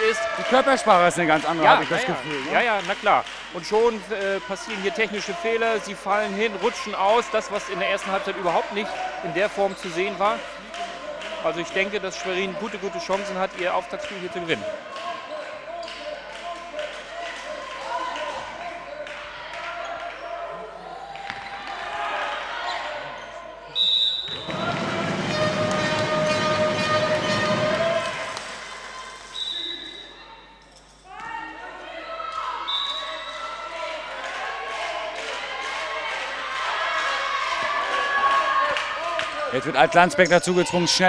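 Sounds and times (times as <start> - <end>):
players and spectators voices: 0.0 - 41.0
short high whistle blasts: 23.7 - 24.5, 29.2 - 30.3.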